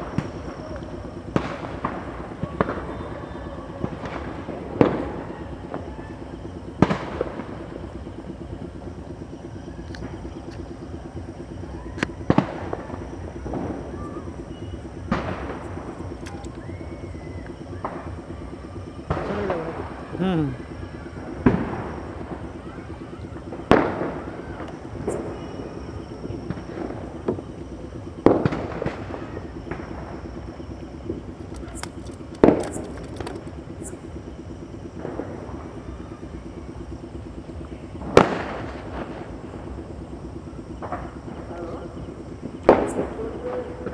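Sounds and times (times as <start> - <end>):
firecrackers banging: 0.0 - 8.3, 10.0 - 33.9, 37.9 - 40.1, 40.7 - 43.9
low pulsing hum: 0.0 - 43.9.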